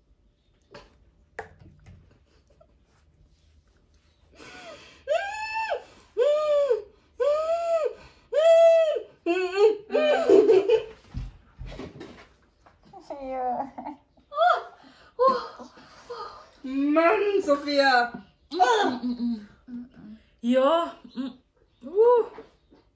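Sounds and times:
woman laughing: 0:04.4 - 0:10.9.

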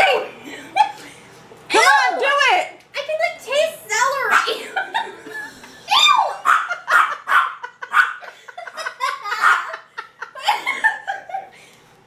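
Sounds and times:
people laughing: 0:04.5 - 0:11.8.

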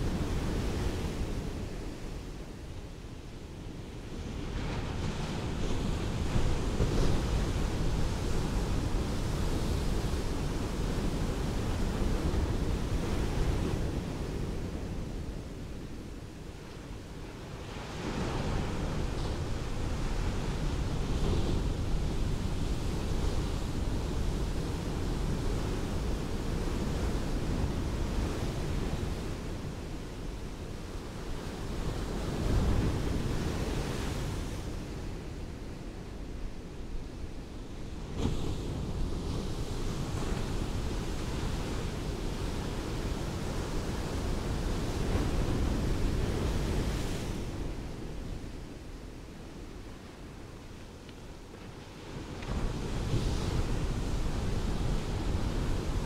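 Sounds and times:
waves washing onto a beach: 0:00.0 - 0:56.0.

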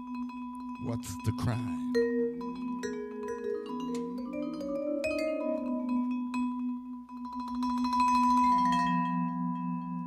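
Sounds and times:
vibraphone mallet strikes: 0:00.0 - 0:10.0
vibraphone chord ringing: 0:00.7 - 0:09.2.

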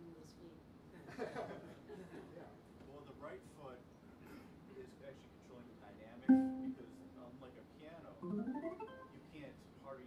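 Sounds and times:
electric guitar note plucked: 0:06.3 - 0:07.2.

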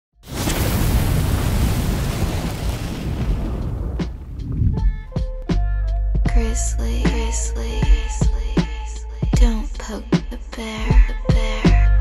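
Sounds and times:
booming rush with deep rumble: 0:01.0 - 0:05.1.

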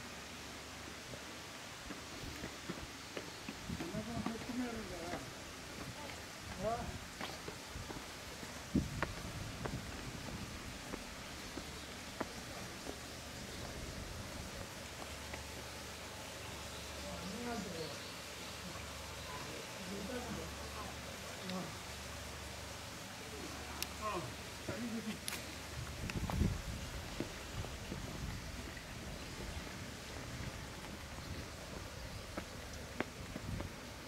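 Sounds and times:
distant people talking: 0:15.1 - 0:25.7.

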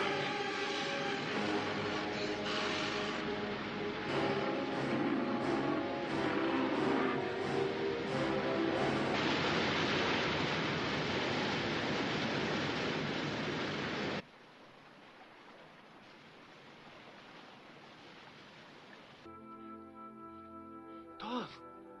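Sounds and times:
dramatic orchestral music: 0:00.0 - 0:09.2.

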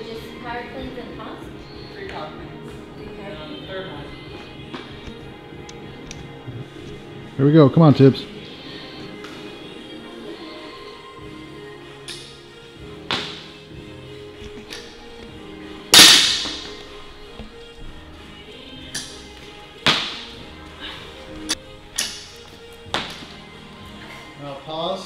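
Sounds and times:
background music: 0:00.0 - 0:25.0
barbell crashing on platform: 0:16.0 - 0:16.7.

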